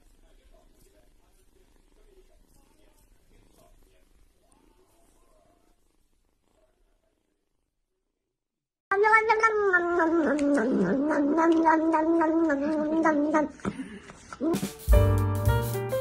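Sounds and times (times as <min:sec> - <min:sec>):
faint kitten purring: 0:00.0 - 0:08.3, 0:08.9 - 0:13.7
loud cat cry: 0:08.9 - 0:13.6.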